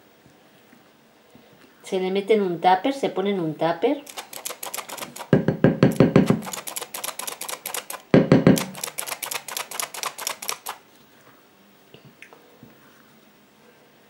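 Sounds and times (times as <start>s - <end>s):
flour sifter clicking: 4.0s - 10.8s.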